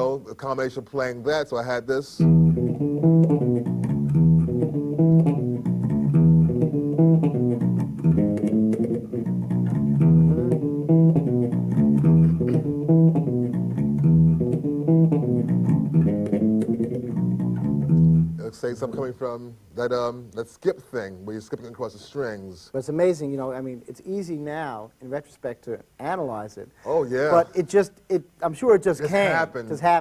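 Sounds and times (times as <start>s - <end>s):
electric bass played fingerstyle: 2.2s - 18.4s.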